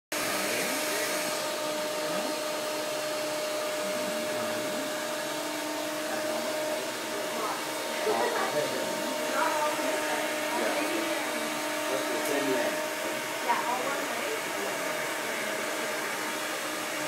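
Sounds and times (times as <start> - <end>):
electric hair clippers humming: 0.2 - 17.0
faint chatter: 3.6 - 17.0.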